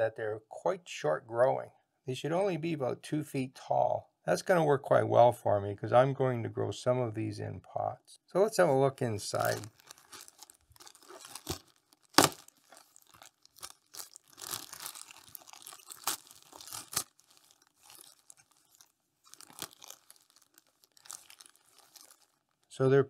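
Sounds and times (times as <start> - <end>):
plastic bag crinkling: 9.1 - 22.7
plastic bag snap: 11.2 - 12.5.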